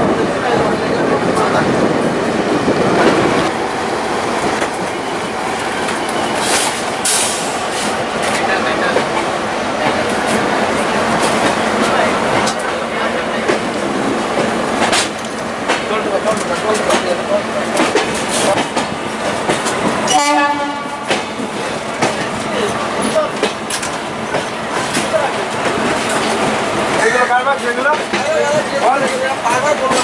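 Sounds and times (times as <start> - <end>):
train running noise: 0.0 - 30.0
wheels clicking over rail joints: 21.1 - 30.0.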